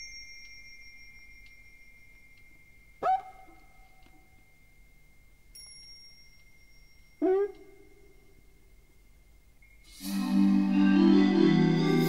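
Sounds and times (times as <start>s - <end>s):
bell-like chimes: 0.0s - 9.9s.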